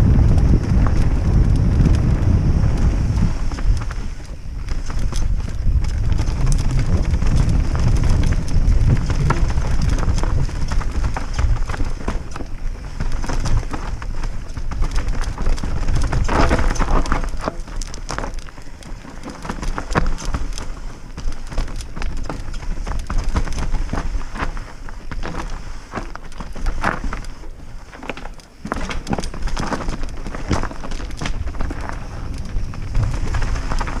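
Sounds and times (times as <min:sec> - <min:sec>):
wind buffeting microphone: 0:00.0 - 0:27.8, 0:28.7 - 0:34.0
bike chain and frame rattling: 0:00.0 - 0:34.0
bike tyres clattering over stones: 0:00.0 - 0:34.0.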